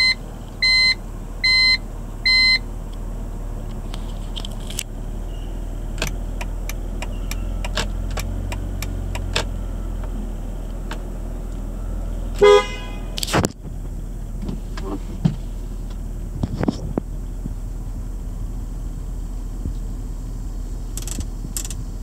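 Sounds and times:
two-tone car horn toot: 0.0s - 2.6s, 12.3s - 13.2s
car engine idling: 0.0s - 22.0s.

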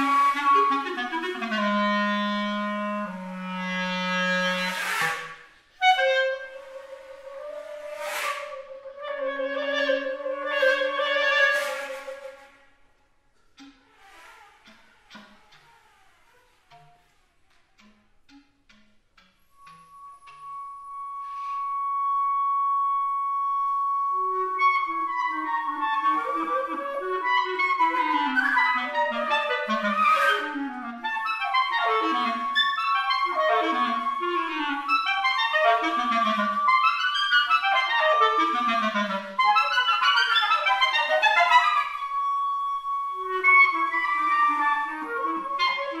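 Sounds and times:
clarinet runs sweeping downward: 0.0s - 12.6s, 19.6s - 46.0s
held high flute note: 0.0s - 12.8s, 19.4s - 46.0s.

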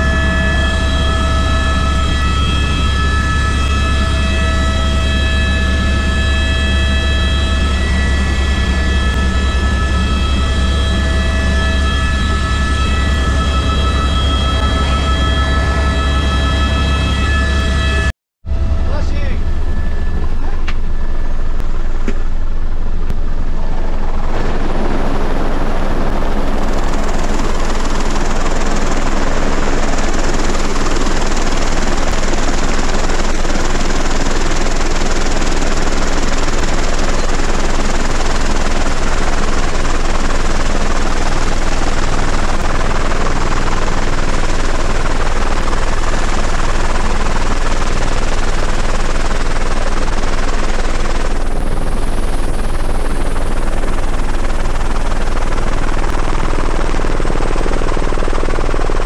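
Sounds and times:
helicopter rotor drone: 0.0s - 59.0s
high turbine whine: 0.0s - 59.0s.

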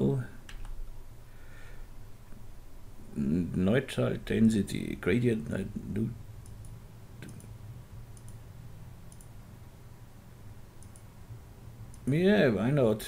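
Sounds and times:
low steady hum: 0.0s - 13.0s
faint computer mouse clicks: 6.4s - 7.5s, 8.2s - 8.4s, 9.1s - 9.3s, 10.8s - 11.1s, 11.9s - 12.2s.

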